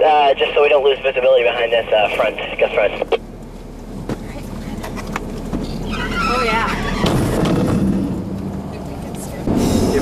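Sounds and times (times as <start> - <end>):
road noise inside moving vehicle: 0.0 - 10.0
vehicle engine: 0.0 - 10.0
wind: 0.0 - 10.0.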